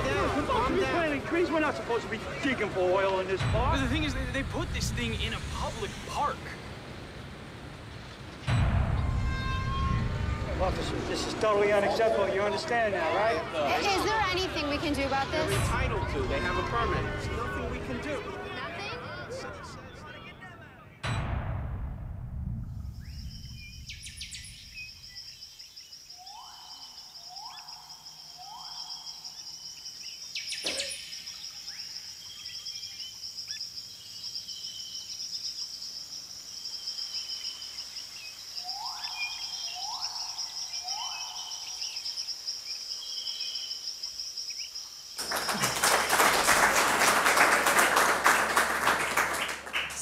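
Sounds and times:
rising calls: 0:00.0 - 0:03.4, 0:04.0 - 0:21.0, 0:22.9 - 0:50.0
insect drone: 0:00.0 - 0:19.4, 0:21.2 - 0:49.3
loud rush of noise: 0:00.0 - 0:23.9
scattered chirps: 0:22.7 - 0:35.0, 0:36.7 - 0:45.6.

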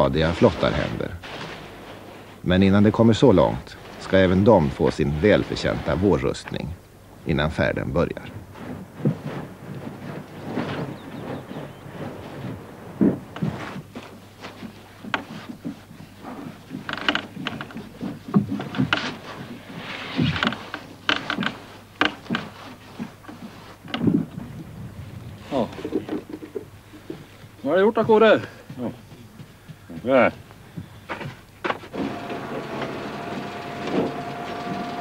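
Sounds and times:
brush spreading coating on planks: 0:00.2 - 0:06.4, 0:21.6 - 0:23.9
knocks and scrapes on wooden hull: 0:08.1 - 0:27.3.

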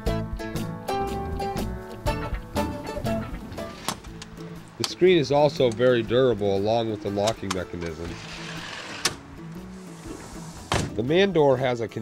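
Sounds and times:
soft background music: 0:00.0 - 0:12.0
screen door sliding on track: 0:03.5 - 0:04.2, 0:07.1 - 0:11.0.

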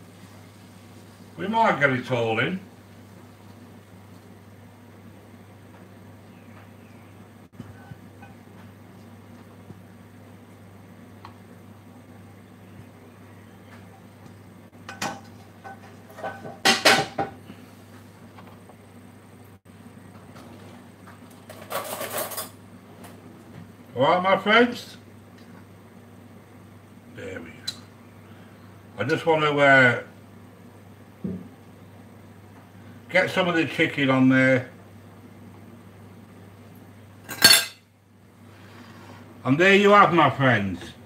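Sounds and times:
steady low hum: 0:00.0 - 0:41.0
cutlery and dishes clattering: 0:21.5 - 0:22.6, 0:37.3 - 0:37.8.

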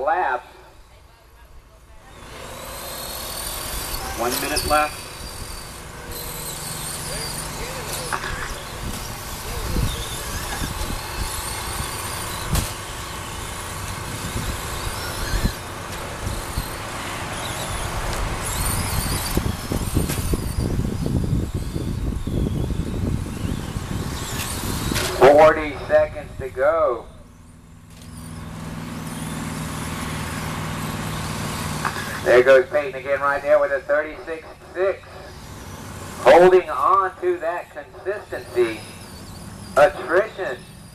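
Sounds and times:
electric toy truck motors whining: 0:00.7 - 0:40.9
tyres on dirt: 0:01.9 - 0:40.9.

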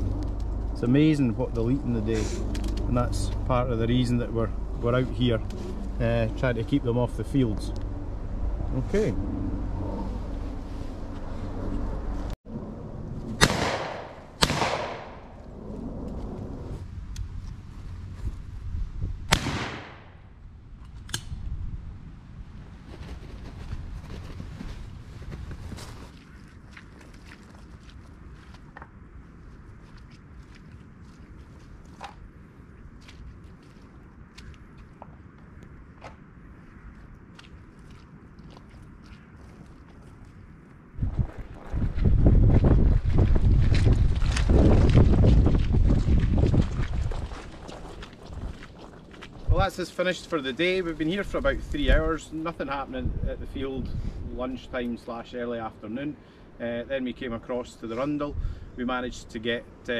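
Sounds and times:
shotgun shots: 0:13.4 - 0:15.4, 0:19.3 - 0:20.2
wind buffeting microphone: 0:14.8 - 0:26.1, 0:35.8 - 0:54.8.

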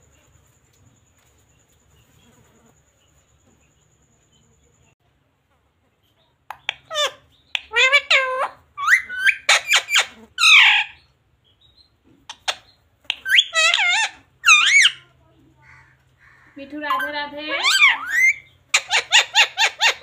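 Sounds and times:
parrot talking: 0:06.5 - 0:11.0, 0:12.3 - 0:20.0.

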